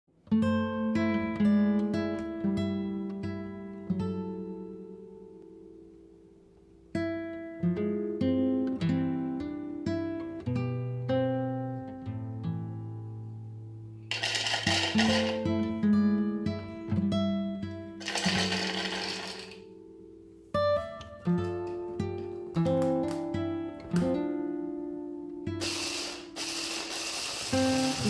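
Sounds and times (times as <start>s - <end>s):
acoustic guitar picked melody: 0.2s - 28.0s.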